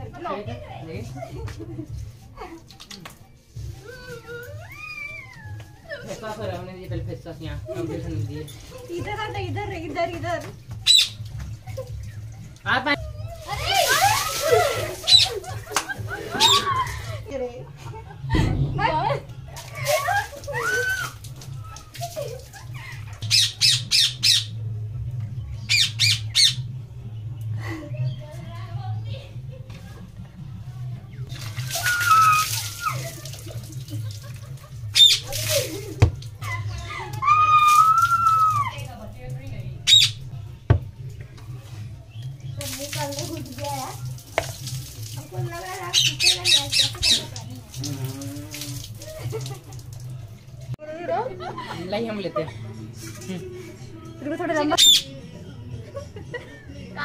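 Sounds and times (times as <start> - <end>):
people shouting and laughing: 3.8 - 6.4, 13.0 - 23.2, 31.6 - 39.0, 47.0 - 54.2, 55.0 - 57.0
water thrown over people: 10.3 - 17.2, 18.2 - 23.2, 31.2 - 36.5, 37.1 - 39.4, 42.5 - 50.8.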